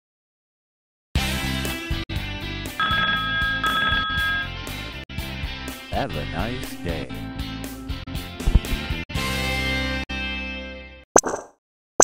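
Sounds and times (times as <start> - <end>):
background guitar music: 1.2 - 11.0
telephone ringing: 2.8 - 4.8.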